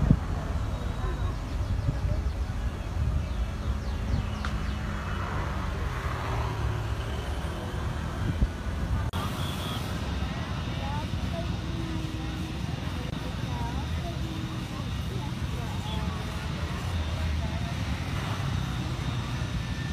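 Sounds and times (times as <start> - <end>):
jet engines rumbling: 0.0 - 19.9.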